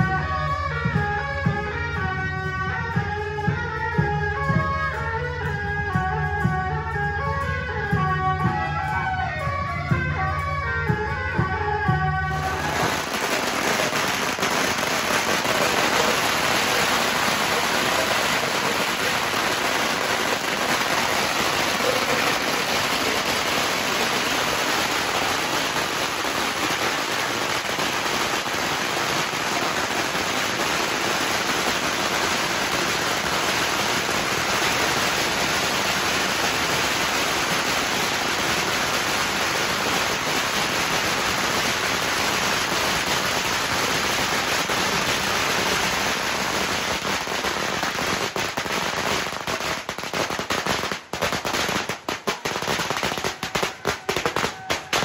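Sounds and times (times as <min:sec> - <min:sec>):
firecrackers crackling: 0:11.3 - 0:55.0.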